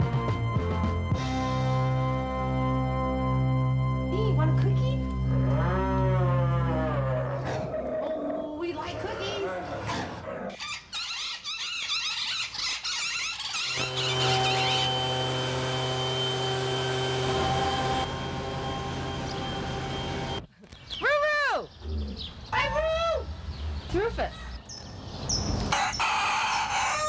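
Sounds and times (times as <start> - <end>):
high bird chirps: 10.6 - 15.0
bird call rising and falling: 10.6 - 23.9
steady hum: 13.7 - 20.5.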